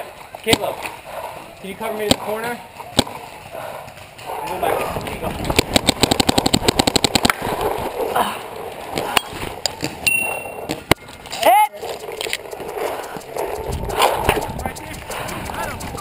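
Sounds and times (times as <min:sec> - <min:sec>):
paintball marker rapid firing: 0:01.9 - 0:02.3, 0:02.9 - 0:03.2, 0:05.5 - 0:07.5, 0:11.9 - 0:15.9.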